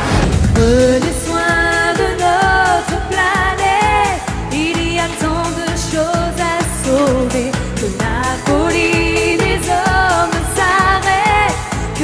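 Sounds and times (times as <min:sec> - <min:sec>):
steady dance beat: 0:00.0 - 0:06.6
woman singing upbeat pop song: 0:00.4 - 0:12.0.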